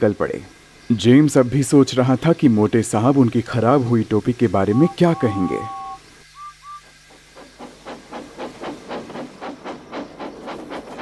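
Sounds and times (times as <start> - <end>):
steam locomotive chuffing: 3.1 - 11.0.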